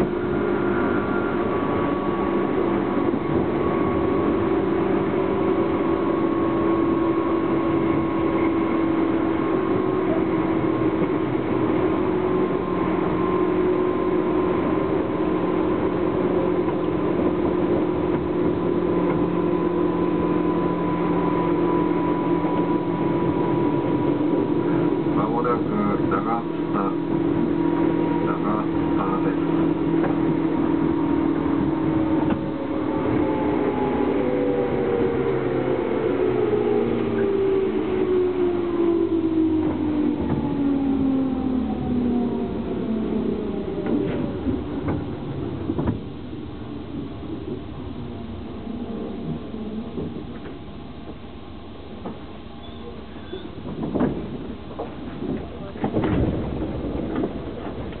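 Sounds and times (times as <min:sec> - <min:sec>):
traction motor whine falling: 0:00.0 - 0:58.0
train wheel and running noise: 0:00.0 - 0:58.0.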